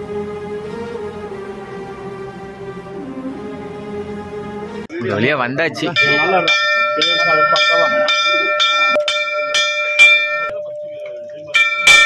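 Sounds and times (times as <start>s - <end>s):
large brass bell ringing: 5.8s - 10.6s, 11.5s - 12.0s.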